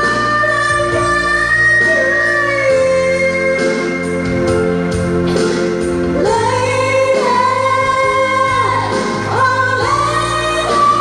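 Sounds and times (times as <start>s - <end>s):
woman singing into a microphone: 0.0s - 4.6s, 6.1s - 11.0s
instrumental accompaniment: 0.0s - 11.0s.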